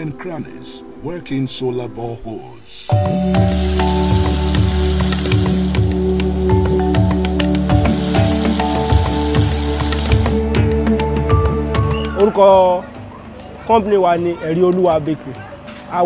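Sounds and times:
background music with steady beat: 2.8 - 16.0
oil crackling: 3.3 - 10.5
dough deep-frying in oil: 3.4 - 10.4.

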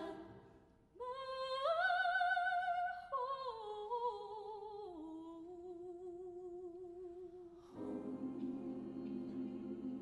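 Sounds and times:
soprano singing with vibrato: 0.0 - 0.4, 1.0 - 10.0.

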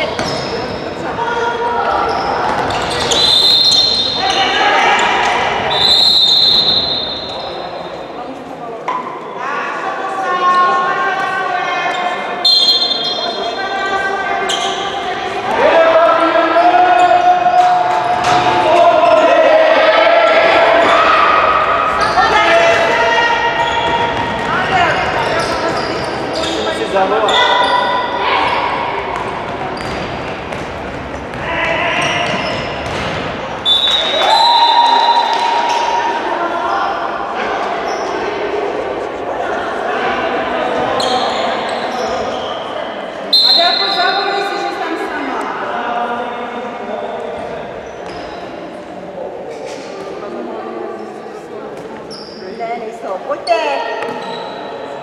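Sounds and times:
ball bouncing on hall floor: 0.0 - 0.9, 2.4 - 4.0, 23.6 - 26.1, 29.1 - 34.2, 53.9 - 54.4
people shouting in a hall: 0.6 - 8.3, 9.3 - 29.8, 31.2 - 32.8, 33.4 - 47.4.

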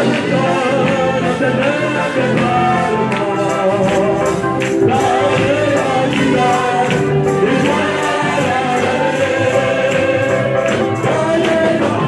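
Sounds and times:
choir singing gospel music: 0.0 - 12.0.

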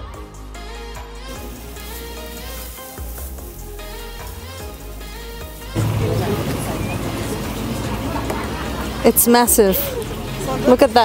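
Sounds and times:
music with held notes and bass: 0.0 - 11.0
noisy live ambience: 1.4 - 11.0.

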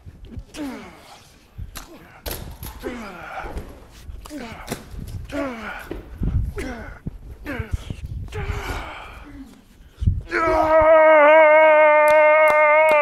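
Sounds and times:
man straining: 0.2 - 13.0
man yelling: 10.3 - 13.0.

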